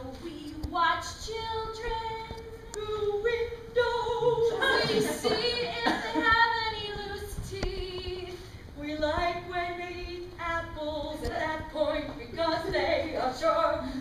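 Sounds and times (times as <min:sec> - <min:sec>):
woman singing unaccompanied: 0:00.0 - 0:14.0.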